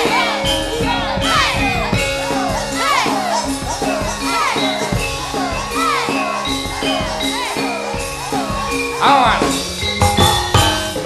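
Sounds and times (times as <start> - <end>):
gamelan ensemble: 0.0 - 11.0.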